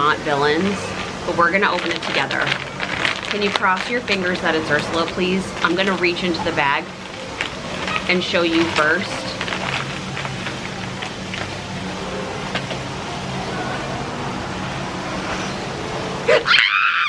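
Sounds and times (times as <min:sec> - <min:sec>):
faint music: 0:00.0 - 0:16.5
outdoor background hum: 0:00.0 - 0:17.0
woman screaming excitedly: 0:16.3 - 0:17.0.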